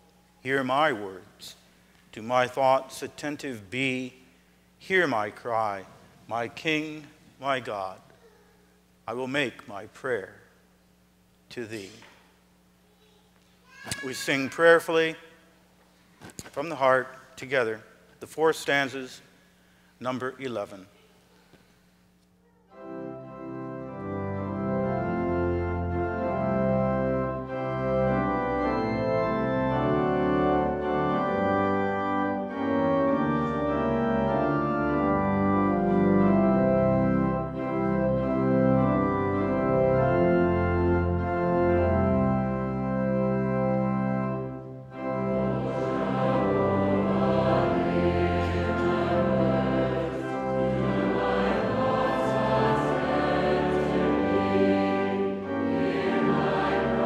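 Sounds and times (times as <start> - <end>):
church organ playing chords: 0.0 - 8.0, 22.7 - 57.0
congregation singing a hymn: 22.8 - 57.0.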